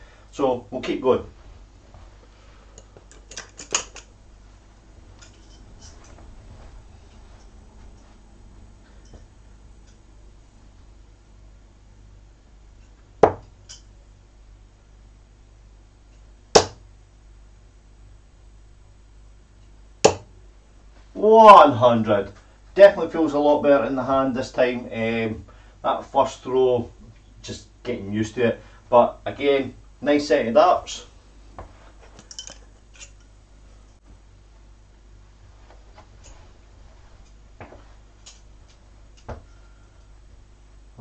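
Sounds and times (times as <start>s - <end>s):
dart hitting dartboard: 13.2s - 13.5s, 16.6s - 16.8s, 20.0s - 20.3s.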